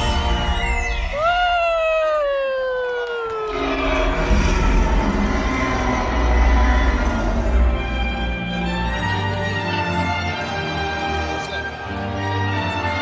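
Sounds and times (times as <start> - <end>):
low rumble: 3.6 - 8.3.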